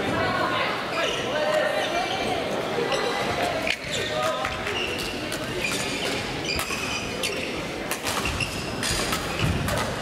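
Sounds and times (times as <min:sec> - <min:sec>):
echoing chatter of voices: 0:00.0 - 0:10.0.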